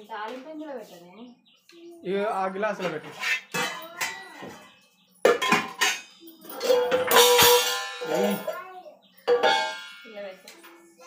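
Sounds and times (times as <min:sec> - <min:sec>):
steel vessels clanking and ringing: 0:02.7 - 0:11.0.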